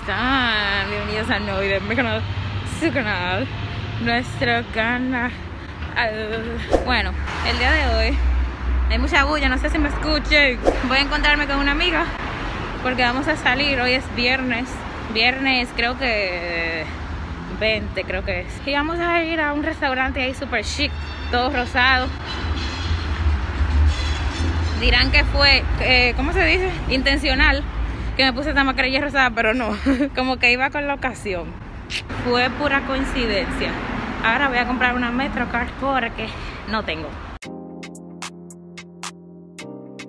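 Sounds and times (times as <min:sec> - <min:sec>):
woman speaking: 0:00.0 - 0:05.4, 0:06.0 - 0:08.2, 0:08.9 - 0:12.2, 0:24.8 - 0:27.6, 0:28.2 - 0:37.2
road traffic rumble: 0:00.0 - 0:37.4.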